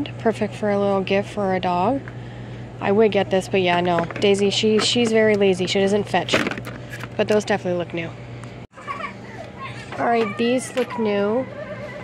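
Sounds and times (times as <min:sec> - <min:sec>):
steady low hum: 0:00.0 - 0:12.0
child's high-pitched voice: 0:08.8 - 0:12.0.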